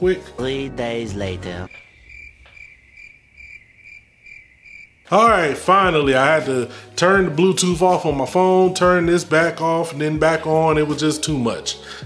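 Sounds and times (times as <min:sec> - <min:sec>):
cricket chirping: 0:01.7 - 0:05.5.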